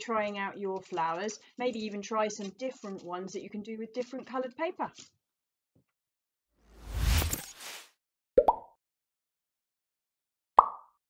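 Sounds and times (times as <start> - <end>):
cartoon pops rising in pitch: 8.4 - 8.7, 10.6 - 11.0.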